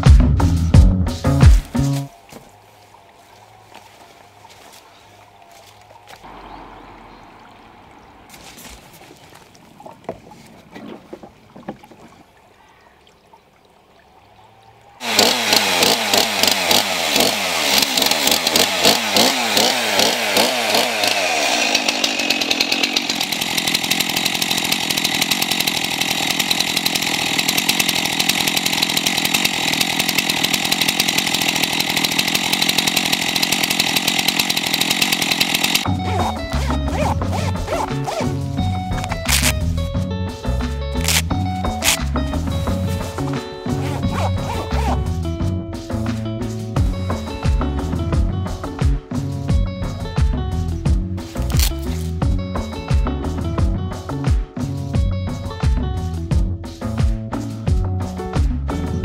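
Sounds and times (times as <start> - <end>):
music with a beat: 0.0 - 2.1, 45.1 - 59.0
chainsaw revving: 15.0 - 39.7, 41.0 - 45.2, 51.3 - 52.3.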